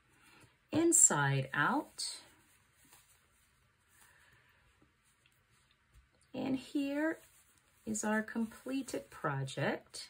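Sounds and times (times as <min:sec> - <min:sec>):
soft handling of yarn gloves: 0:00.0 - 0:10.0.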